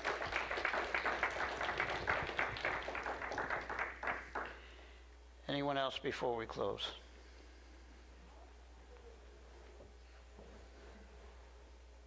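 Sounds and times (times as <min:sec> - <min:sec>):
congregation applauding: 0:00.0 - 0:04.6.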